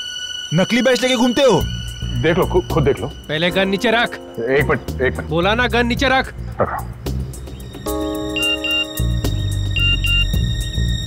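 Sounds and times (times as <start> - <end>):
dramatic background score: 0.0 - 11.0
mobile phone ringing double beeps: 8.3 - 9.0.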